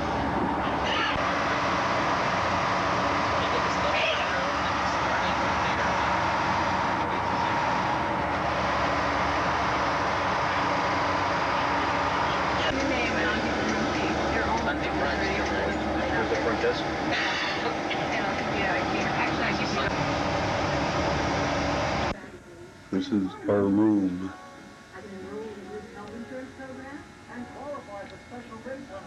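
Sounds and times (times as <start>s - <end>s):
road noise inside bus: 0.0s - 22.2s
bus engine hum: 0.0s - 22.3s.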